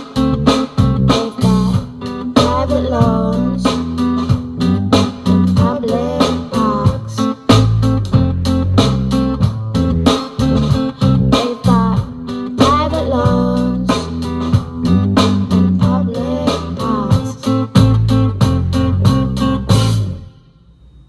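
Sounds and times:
loud guitar song on car stereo: 0:00.0 - 0:20.5.

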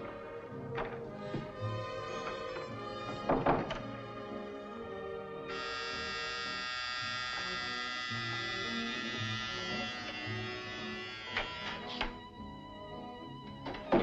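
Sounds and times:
music playing: 0:00.0 - 0:14.0
electric door buzzer: 0:05.5 - 0:12.2.

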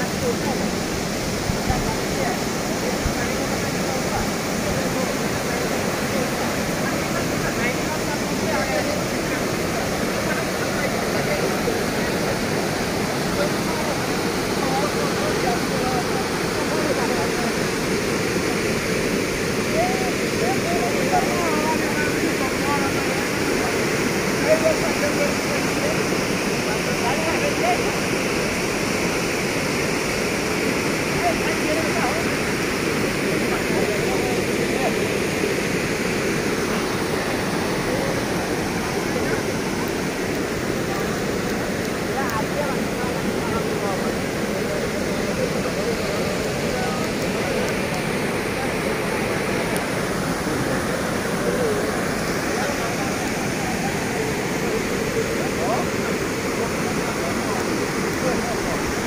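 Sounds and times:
floodwater rushing: 0:00.0 - 0:59.0.

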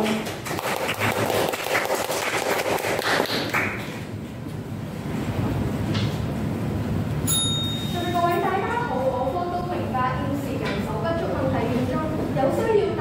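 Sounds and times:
audience applauding: 0:00.0 - 0:04.0
room noise: 0:00.0 - 0:13.0
ringing ping: 0:07.2 - 0:08.9.

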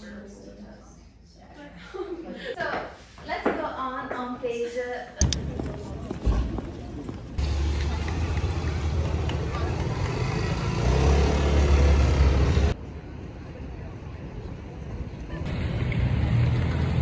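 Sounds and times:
people talking: 0:00.0 - 0:06.4, 0:07.4 - 0:10.6
steady low street rumble: 0:03.8 - 0:17.0.

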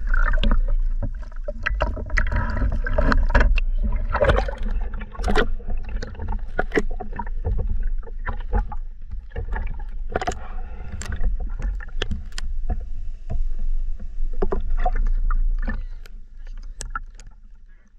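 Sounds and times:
low water rumble: 0:00.0 - 0:17.9
water splashes: 0:00.0 - 0:17.9
clicks and knocks: 0:04.2 - 0:12.5.

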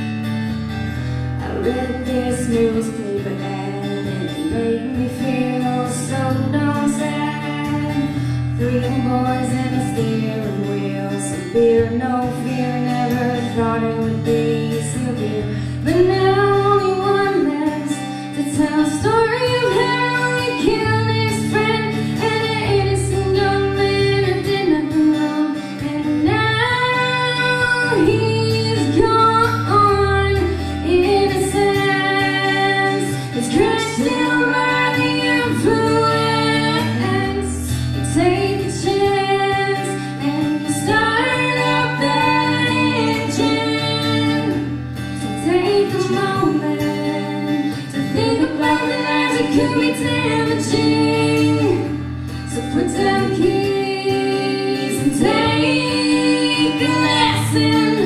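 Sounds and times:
strummed acoustic guitar: 0:00.0 - 0:58.0
woman singing: 0:01.2 - 0:58.0.

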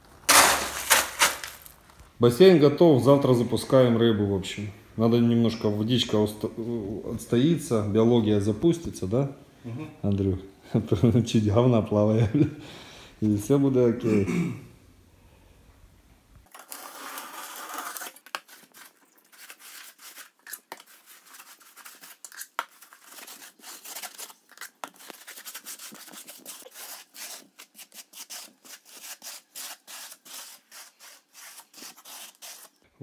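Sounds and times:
trowel scraping mortar: 0:00.3 - 0:01.7, 0:16.5 - 0:32.9.

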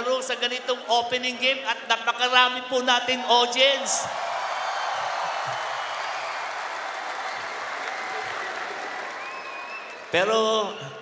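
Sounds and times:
audience applauding: 0:04.1 - 0:10.6.

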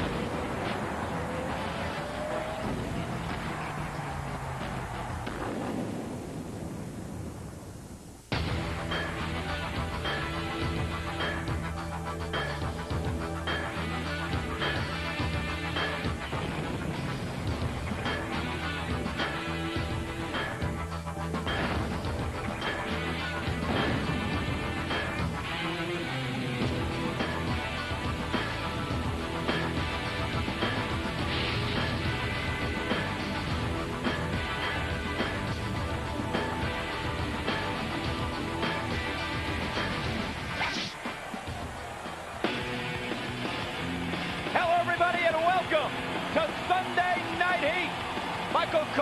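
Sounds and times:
theme music: 0:00.0 - 0:06.0, 0:08.3 - 0:49.0
heavy crash hits: 0:00.0 - 0:07.3, 0:21.5 - 0:25.4
loud dense noise: 0:00.0 - 0:07.3, 0:08.2 - 0:49.0.

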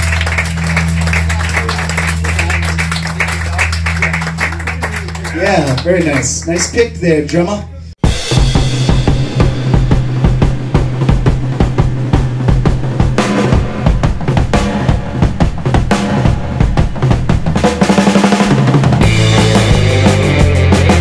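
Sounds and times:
rock drum kit: 0:08.0 - 0:21.0.

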